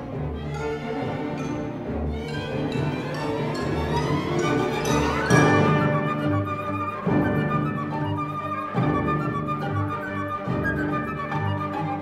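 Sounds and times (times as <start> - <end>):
orchestral strings: 0.0 - 12.0
solo flute playing: 4.4 - 12.0.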